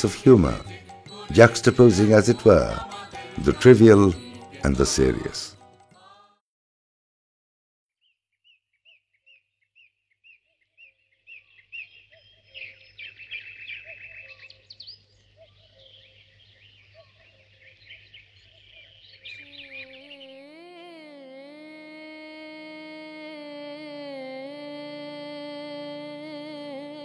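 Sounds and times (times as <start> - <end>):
birds chirping: 0.0 - 5.6, 8.4 - 20.5
music with long held tones: 0.0 - 5.9.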